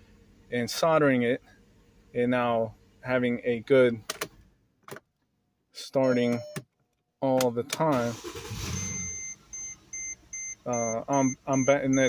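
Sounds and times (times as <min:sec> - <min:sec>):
dashboard warning chime beeping: 0:06.0 - 0:06.6, 0:08.2 - 0:12.0
car engine cranking and starting: 0:07.4 - 0:12.0.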